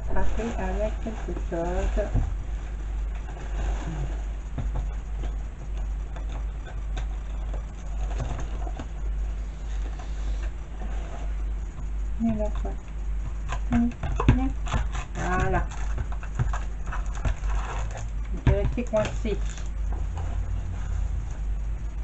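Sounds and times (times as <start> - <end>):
steady low hum: 0.0 - 22.0
tool tapping and scraping cardboard: 13.2 - 20.5.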